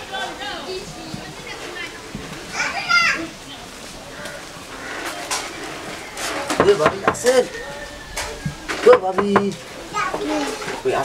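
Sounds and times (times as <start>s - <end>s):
children playing: 0.0s - 11.0s.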